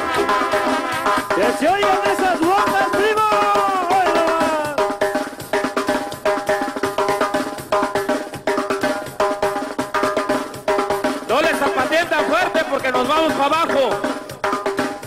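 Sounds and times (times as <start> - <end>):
steady drum beat: 0.0 - 15.0
person singing: 1.4 - 4.8.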